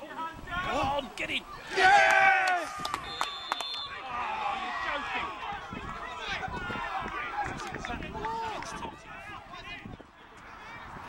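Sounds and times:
men shouting and calling: 0:00.0 - 0:03.1, 0:03.8 - 0:11.0.

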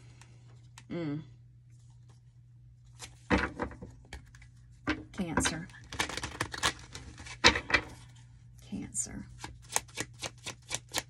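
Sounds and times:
cards being shuffled: 0:05.8 - 0:07.6, 0:09.3 - 0:11.0.

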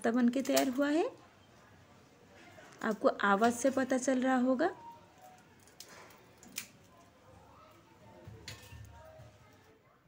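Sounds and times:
fried flatbread cracking: 0:05.2 - 0:07.1.

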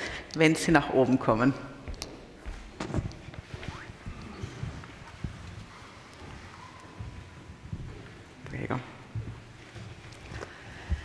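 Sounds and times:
soft rustling: 0:01.9 - 0:11.0.

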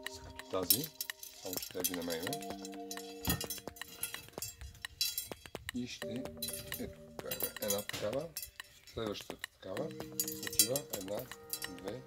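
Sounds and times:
bicycle spokes clinking: 0:00.0 - 0:12.0.

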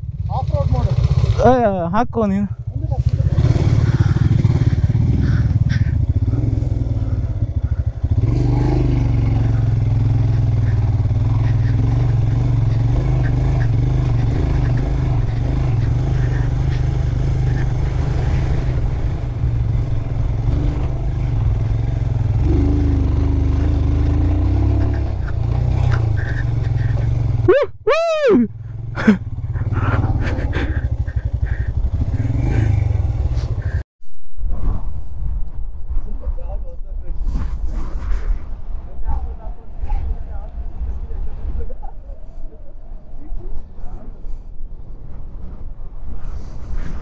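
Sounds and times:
motorcycle engine running: 0:00.0 - 0:01.6, 0:02.5 - 0:27.6, 0:28.5 - 0:33.8.

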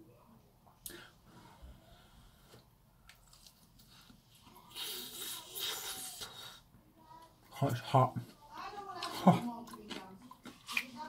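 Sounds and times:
man chewing food: 0:02.0 - 0:11.0.

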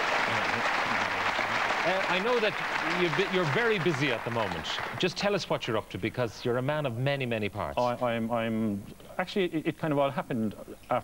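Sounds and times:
audience applauding: 0:00.0 - 0:05.6
man speaking: 0:00.3 - 0:11.0.

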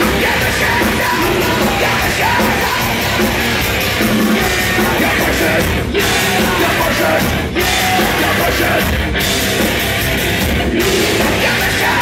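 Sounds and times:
bass guitar: 0:00.0 - 0:12.0
distorted electric guitars: 0:00.0 - 0:12.0
driving drum beat: 0:00.0 - 0:12.0
shouted vocals: 0:04.4 - 0:09.0, 0:10.7 - 0:12.0.

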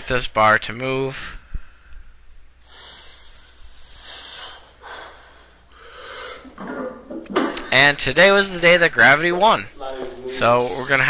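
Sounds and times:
sharp hissing breaths: 0:02.6 - 0:06.6.

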